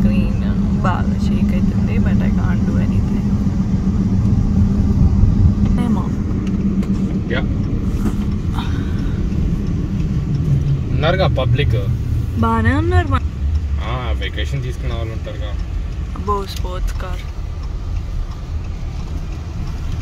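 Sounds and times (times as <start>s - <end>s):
car road noise: 0.0s - 20.0s.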